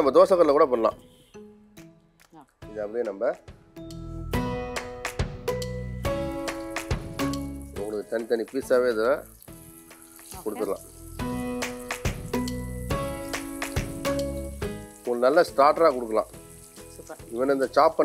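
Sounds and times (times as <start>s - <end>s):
background music with plucked notes: 0.0s - 18.0s
chicken sizzling in hot oil: 4.8s - 18.0s.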